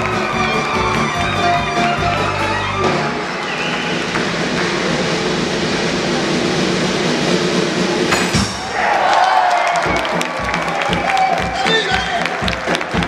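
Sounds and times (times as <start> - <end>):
circus band playing: 0.0 - 13.0.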